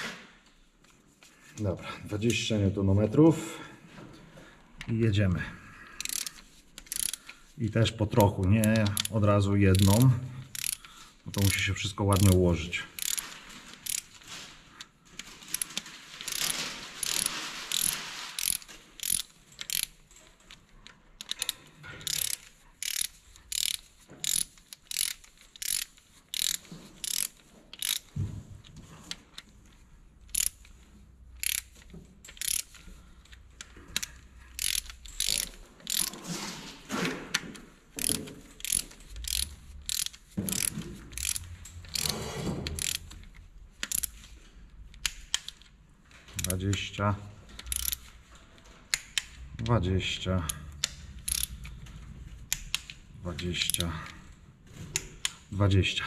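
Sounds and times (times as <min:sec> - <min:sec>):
ratchet wrench clicking: 0:06.0 - 0:07.4, 0:08.1 - 0:14.2, 0:15.5 - 0:20.6, 0:21.2 - 0:28.1, 0:30.2 - 0:36.2, 0:38.0 - 0:45.7, 0:47.6 - 0:48.2, 0:50.4 - 0:51.8, 0:52.5 - 0:53.0, 0:53.6 - 0:53.9.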